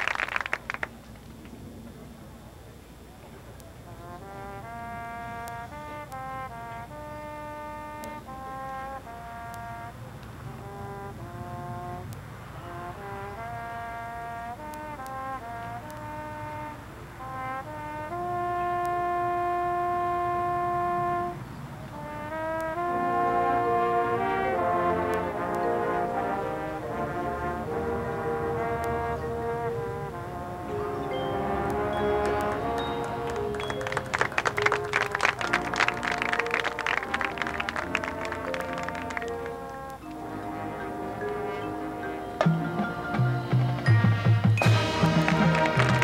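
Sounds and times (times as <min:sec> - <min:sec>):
marching band brass playing: 0:03.8 - 0:46.0
sharp percussion hits: 0:42.4 - 0:46.0.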